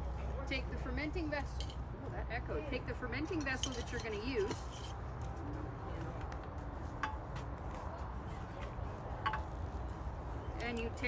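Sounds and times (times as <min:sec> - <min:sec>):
glass jar clinking: 0:03.4 - 0:04.9.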